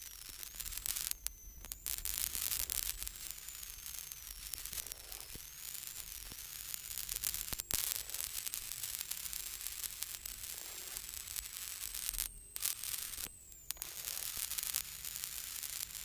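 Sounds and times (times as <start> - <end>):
intercom hissing and crackling: 0.0 - 16.0
thin high whine: 0.0 - 16.0.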